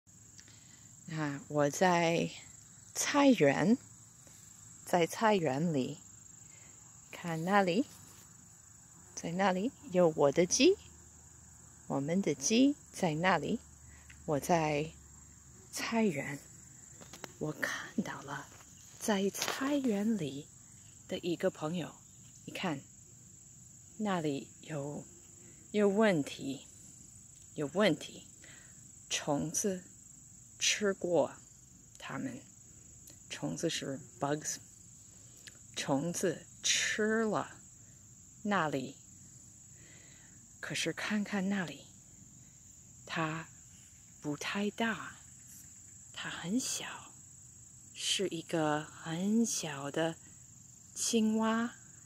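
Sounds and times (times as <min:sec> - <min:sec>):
crickets trilling: 0:00.1 - 0:52.0.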